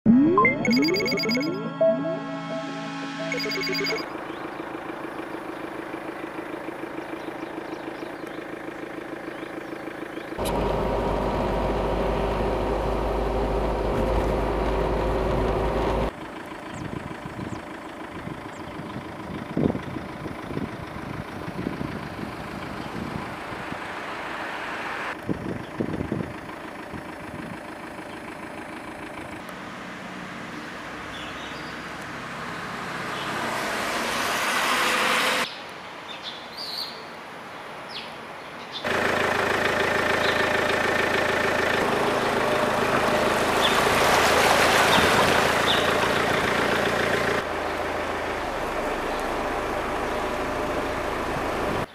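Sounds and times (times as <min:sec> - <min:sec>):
bird chirps: 0:00.4 - 0:04.6
car driving on wet road: 0:10.4 - 0:16.1, 0:21.9 - 0:25.2, 0:33.3 - 0:35.4, 0:38.9 - 0:51.9.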